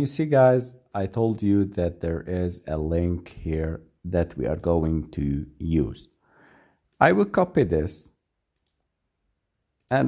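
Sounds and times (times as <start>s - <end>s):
man talking: 0.0s - 6.2s, 7.0s - 8.2s
computer mouse click: 8.5s - 8.9s.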